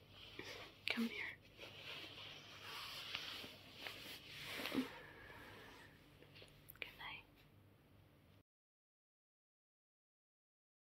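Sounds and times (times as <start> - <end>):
woman's soft whispery breath: 0.2 - 1.4, 4.4 - 6.0, 6.8 - 7.4.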